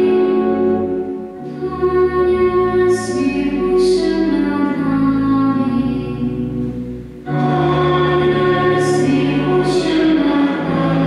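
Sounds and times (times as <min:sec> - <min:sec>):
woman singing a hymn: 0:00.0 - 0:06.7, 0:07.3 - 0:11.0
pipe organ chords: 0:00.0 - 0:11.0.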